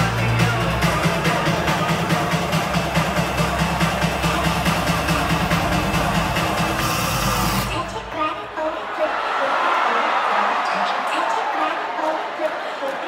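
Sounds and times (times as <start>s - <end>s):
electronic bass music: 0.0s - 8.9s.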